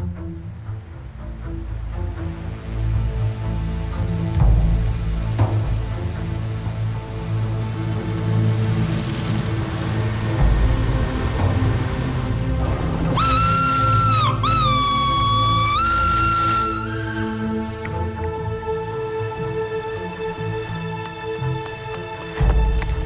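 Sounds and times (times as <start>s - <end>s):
film score music: 0.0s - 23.0s.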